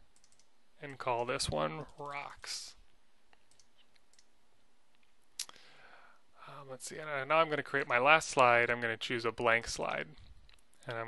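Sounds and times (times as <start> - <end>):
computer mouse click: 0.2 - 0.5, 3.3 - 4.3.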